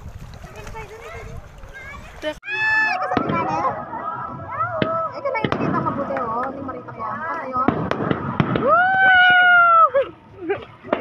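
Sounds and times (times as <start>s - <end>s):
people's voices: 0.5s - 11.0s
fireworks bursting with bangs: 4.8s - 6.4s, 7.6s - 9.5s.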